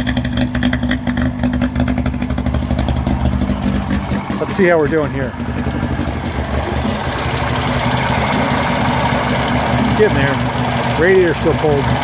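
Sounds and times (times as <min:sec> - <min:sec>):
two-stroke engine idling: 0:00.0 - 0:12.0.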